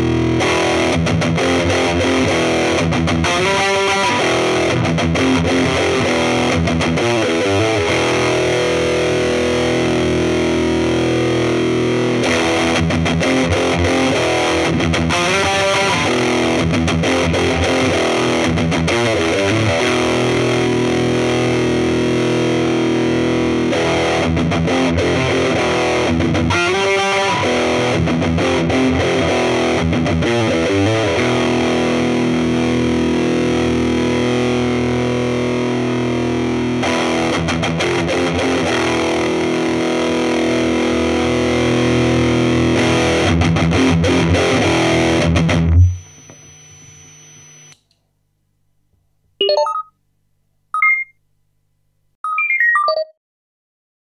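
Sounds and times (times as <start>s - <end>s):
distorted electric guitar chords: 0.0s - 47.8s
faint amp hum: 44.4s - 52.2s.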